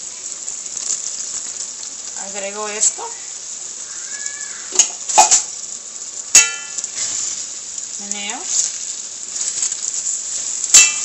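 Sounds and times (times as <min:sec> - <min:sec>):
food sizzling in a pot: 0:00.0 - 0:11.0.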